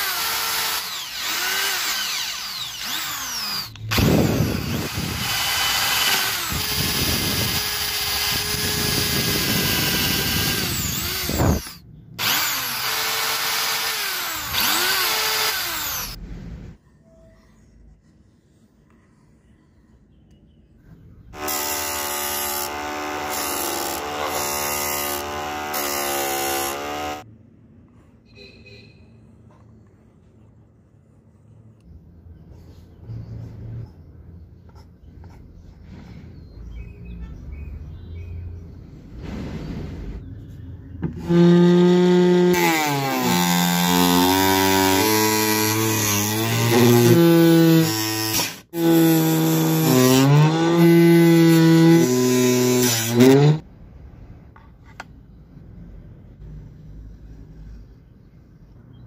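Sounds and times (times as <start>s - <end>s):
electric motor hum: 0.0s - 16.2s.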